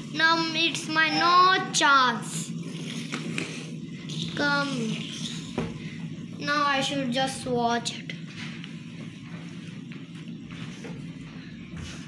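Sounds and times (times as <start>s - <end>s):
fidget spinners whirring: 0.0s - 12.0s.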